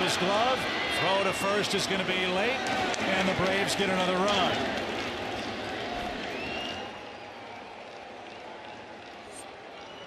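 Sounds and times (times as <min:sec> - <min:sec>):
crowd applause: 0:00.0 - 0:10.0.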